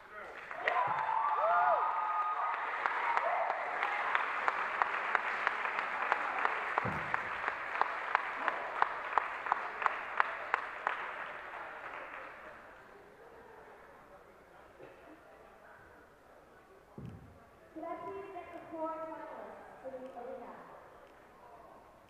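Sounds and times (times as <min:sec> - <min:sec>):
audience applauding: 0:00.2 - 0:12.7
audience cheering: 0:00.5 - 0:10.6
rhythmic clapping: 0:02.5 - 0:12.5.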